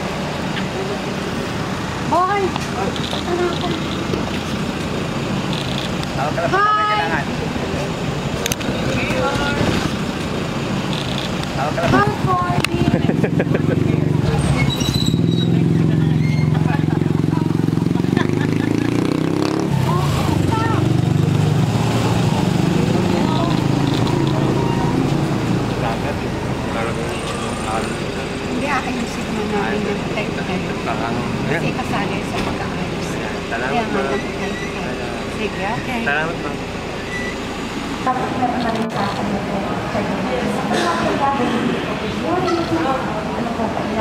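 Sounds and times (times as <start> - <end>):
low engine drone: 0.0 - 44.0
street noise rumble: 0.0 - 44.0
vehicle engine hum: 0.0 - 44.0
people talking: 2.0 - 4.3, 6.2 - 10.0, 11.6 - 19.1, 19.7 - 36.7, 38.0 - 44.0.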